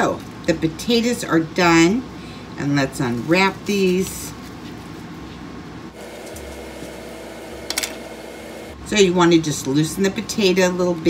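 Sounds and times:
steady low hum: 0:00.0 - 0:10.3.

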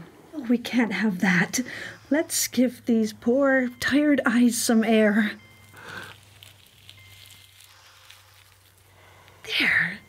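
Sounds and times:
low steady hum: 0:00.0 - 0:10.0
gauze crinkling and rustling: 0:05.5 - 0:10.0.

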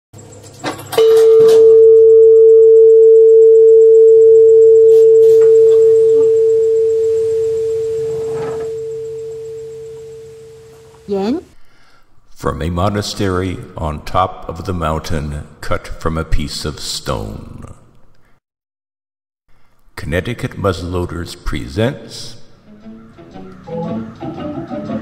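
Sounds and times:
bronze bell ringing: 0:04.9 - 0:10.7.

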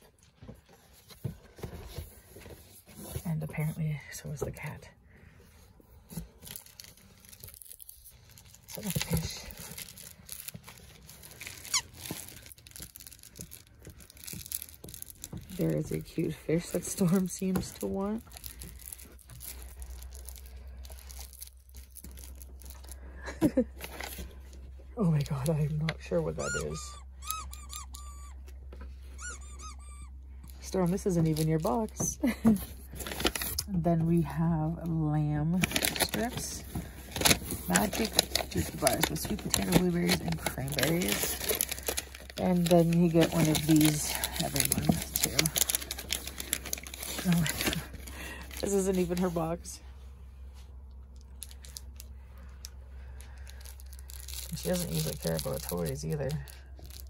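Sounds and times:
hands rummaging in cardboard box: 0:06.0 - 0:24.5, 0:30.6 - 0:49.7
dog toy squeaking: 0:26.3 - 0:28.5, 0:29.1 - 0:30.2.

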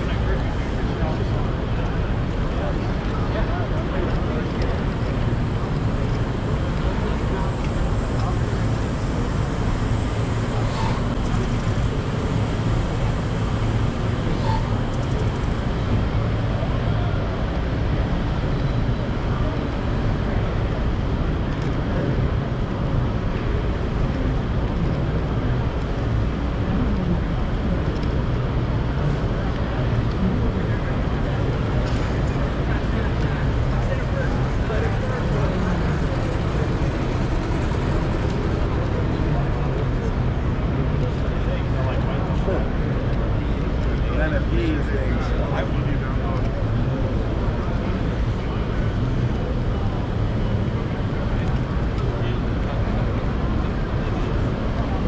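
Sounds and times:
indistinct crowd voices: 0:00.0 - 0:55.0
steady low hum: 0:00.0 - 0:55.0.

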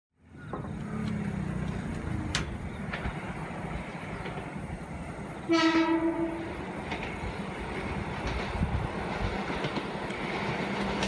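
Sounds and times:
distant diesel railcar rumble: 0:00.2 - 0:11.0.

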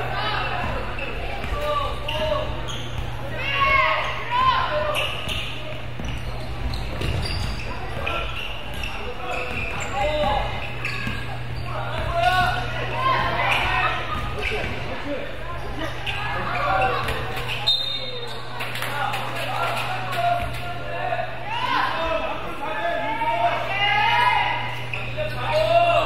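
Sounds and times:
sneakers squeaking: 0:00.0 - 0:22.4, 0:23.4 - 0:26.0.

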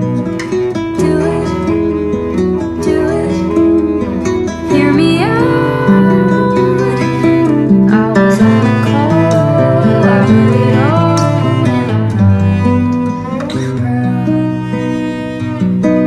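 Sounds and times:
acoustic guitar plucked: 0:00.0 - 0:16.0
bowed cello: 0:00.0 - 0:16.0
woman singing: 0:00.7 - 0:12.6.

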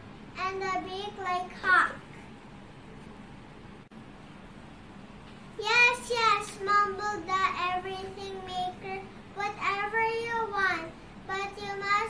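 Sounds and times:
young girl singing: 0:05.6 - 0:12.0.

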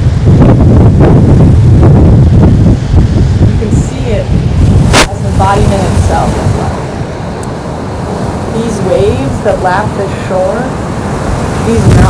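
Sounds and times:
wind buffeting microphone: 0:00.0 - 0:12.0
woman speaking: 0:03.4 - 0:06.9, 0:08.5 - 0:10.8, 0:11.6 - 0:12.0.

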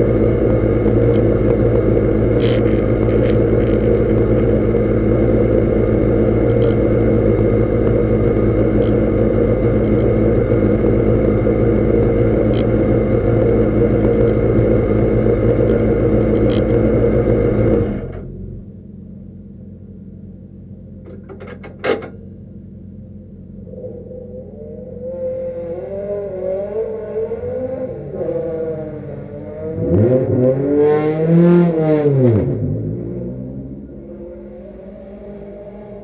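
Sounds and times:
race car engine idling: 0:00.0 - 0:25.1.

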